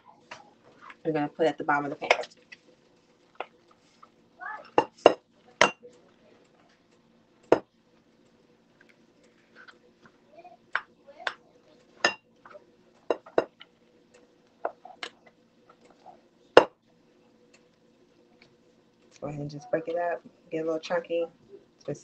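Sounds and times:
faint steady hum: 0.0s - 22.0s.

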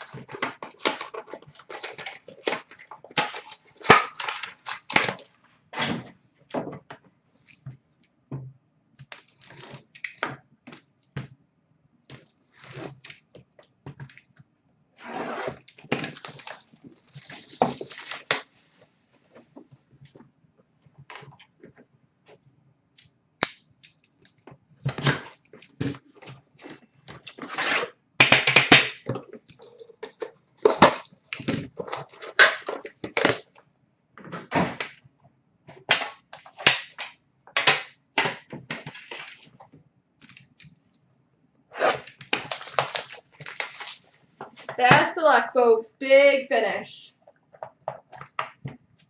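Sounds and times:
tin wrapper crackling and rustling: 15.7s - 18.5s, 41.9s - 44.9s.

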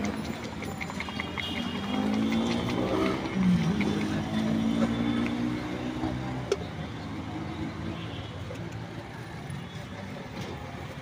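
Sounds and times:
vehicle engine running: 0.0s - 5.6s.

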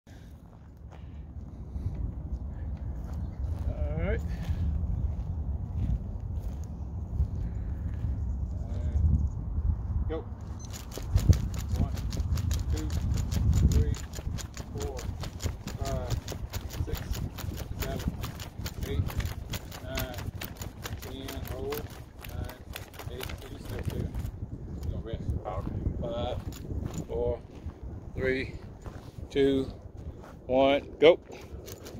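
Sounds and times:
running footsteps on dirt: 0.1s - 9.0s, 10.4s - 31.9s
wind buffeting microphone: 0.1s - 31.9s.

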